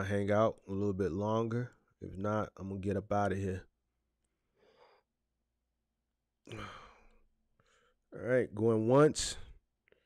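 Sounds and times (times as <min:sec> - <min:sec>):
man speaking: 0:00.0 - 0:03.7, 0:08.1 - 0:09.6
man sighing: 0:06.5 - 0:07.2.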